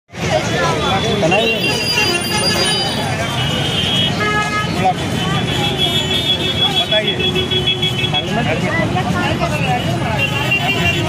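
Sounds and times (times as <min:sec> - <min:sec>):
crowd chatter: 0:00.1 - 0:11.0
street traffic: 0:00.1 - 0:11.0.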